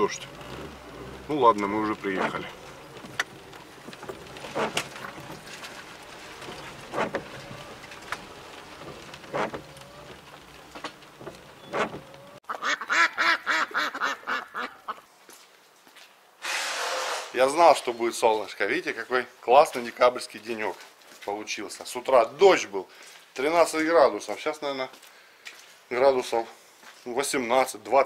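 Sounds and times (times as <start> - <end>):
windshield wipers squeaking on glass: 0.0 - 12.4.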